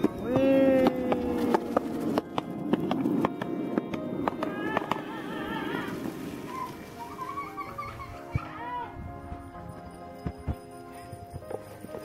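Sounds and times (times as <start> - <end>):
skateboard wheels rolling on concrete: 0.0 - 12.0
wavering melody: 0.0 - 12.0.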